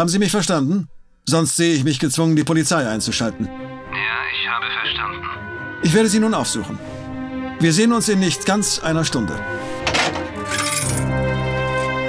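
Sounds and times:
telephone receiver hung up: 9.8s - 10.4s.

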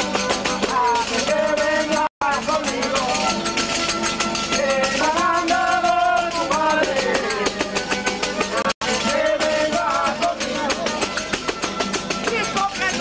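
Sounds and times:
folk band with violins and guitars: 0.0s - 13.0s.

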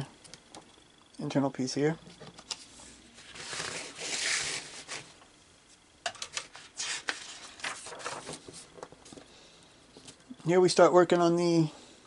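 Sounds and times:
paper pages rustling: 2.5s - 5.1s, 6.3s - 9.3s.

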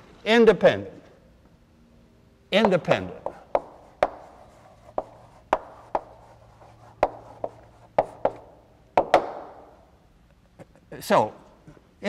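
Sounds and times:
chalk tapping on blackboard: 2.6s - 9.6s.

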